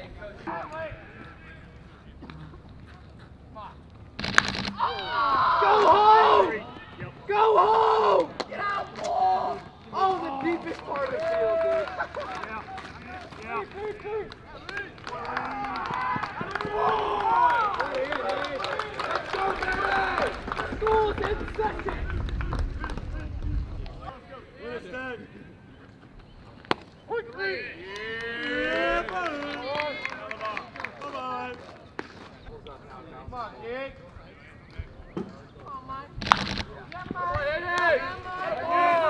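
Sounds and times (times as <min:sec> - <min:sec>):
people shouting and cheering: 0:04.7 - 0:23.4, 0:27.1 - 0:31.4, 0:37.0 - 0:39.0.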